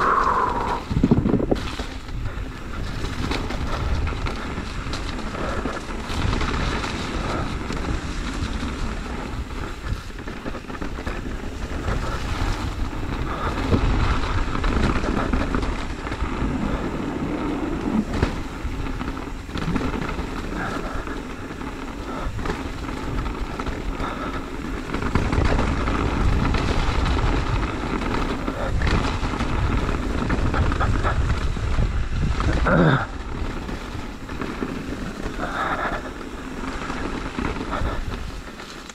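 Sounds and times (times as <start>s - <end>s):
bike tyres rolling on dirt: 0.0s - 38.9s
wind on microphone: 0.0s - 38.9s.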